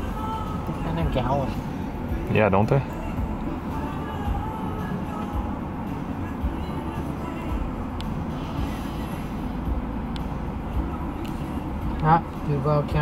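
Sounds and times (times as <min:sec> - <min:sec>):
vehicle rumble: 0:00.0 - 0:13.0
faint radio voice and music: 0:00.1 - 0:05.5.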